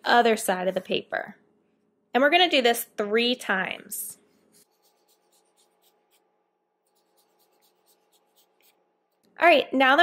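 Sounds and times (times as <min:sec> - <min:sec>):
marker scratching on paper: 0:04.2 - 0:09.2.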